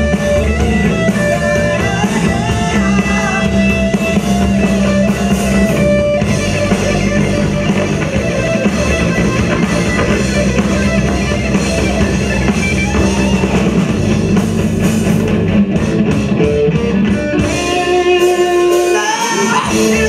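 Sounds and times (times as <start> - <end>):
rock band playing loudly: 0.0 - 20.0.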